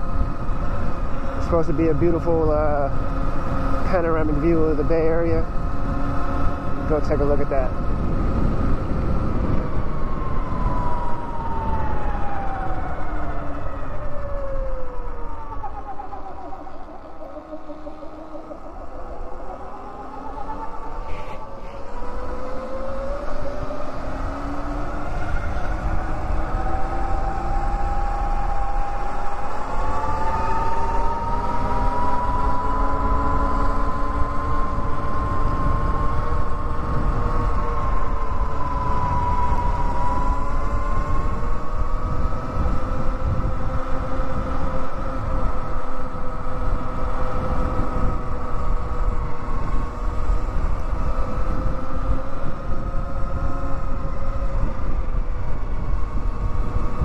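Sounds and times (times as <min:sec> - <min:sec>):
electric motorbike motor whining: 0:00.0 - 0:57.0
road rumble: 0:00.0 - 0:57.0
wind: 0:00.0 - 0:57.0.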